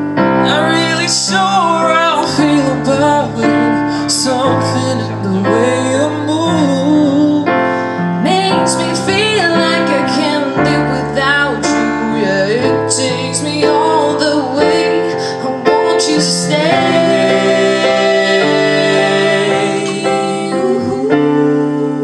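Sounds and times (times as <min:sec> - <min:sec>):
piano accompaniment: 0:00.0 - 0:22.0
woman singing: 0:08.2 - 0:22.0.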